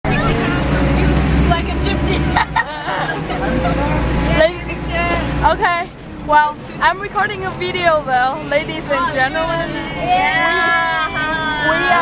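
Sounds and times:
tank engine droning: 0.0 - 12.0
voices talking: 0.0 - 12.0.

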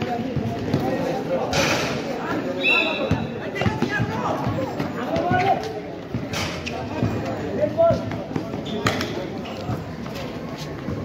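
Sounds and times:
basketball bouncing on concrete: 0.2 - 1.0.

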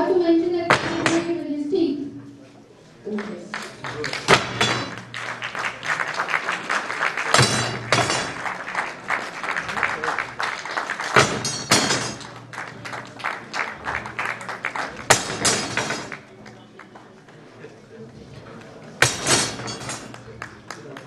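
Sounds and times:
crowd shouting and cheering: 3.8 - 16.6
metal rod thrown down: 4.3 - 5.1, 7.4 - 8.4, 11.2 - 12.4, 15.1 - 16.2, 19.0 - 20.1
steel rods bending: 11.2 - 12.4, 19.0 - 20.1.

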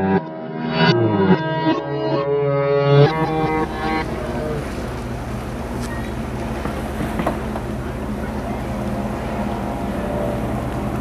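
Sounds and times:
powerboat engines droning: 2.9 - 11.0
water rushing: 3.0 - 11.0.

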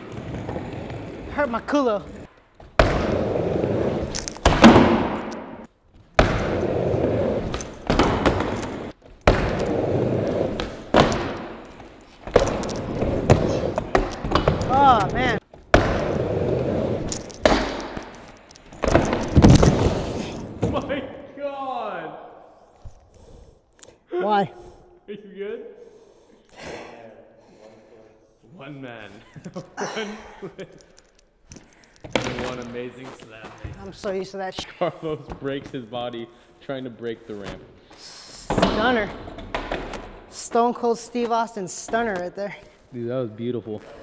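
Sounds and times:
skateboard wheels rolling on wood: 0.0 - 20.9
skateboard clacks and thuds: 4.4 - 5.5, 7.4 - 11.6.

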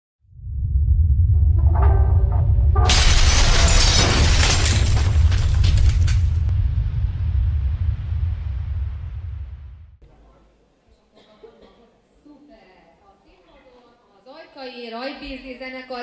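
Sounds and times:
deep steady rumble: 0.2 - 10.0
loud shattering crash: 1.7 - 8.1.

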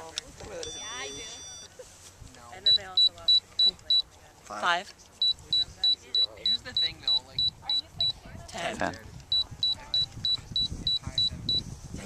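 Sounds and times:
altimeter high beep: 0.6 - 1.7, 2.6 - 4.1, 5.2 - 8.2, 9.3 - 11.7.

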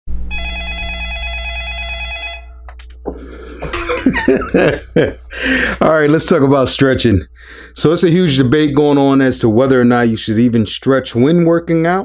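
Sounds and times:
electronic ringing tone: 0.2 - 2.7
man laughing: 3.4 - 6.1.

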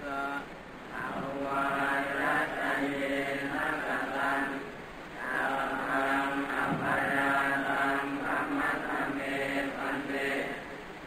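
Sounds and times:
monks chanting in unison: 0.0 - 10.8.

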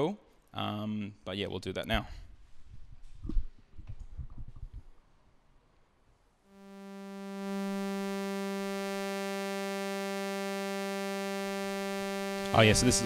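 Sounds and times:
buzzy synthesizer note: 6.5 - 13.0.

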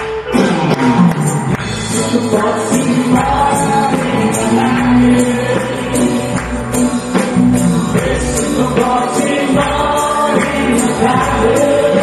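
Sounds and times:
bass guitar: 0.0 - 12.0
drums: 0.0 - 12.0
electric guitar: 0.0 - 12.0
keyboard: 0.0 - 12.0
people singing: 1.8 - 12.0.

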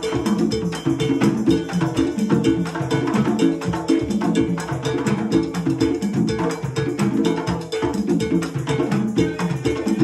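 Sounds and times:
congas: 0.0 - 10.0
cowbell: 0.0 - 10.0.

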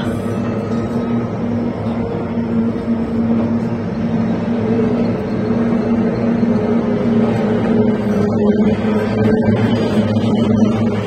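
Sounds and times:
outboard motors droning: 0.0 - 11.0.

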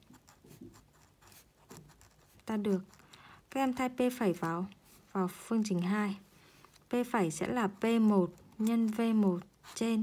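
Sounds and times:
ballpoint pen writing on paper: 0.0 - 4.8, 7.4 - 10.0.

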